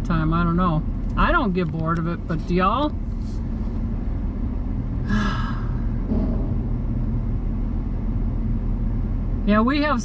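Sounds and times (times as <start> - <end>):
road noise: 0.0 - 10.0
truck engine rumble: 0.0 - 10.0.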